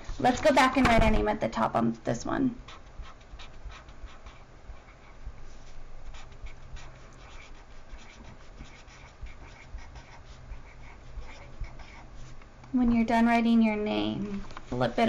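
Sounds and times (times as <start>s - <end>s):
felt-tip marker scratching on paper: 2.6s - 12.4s.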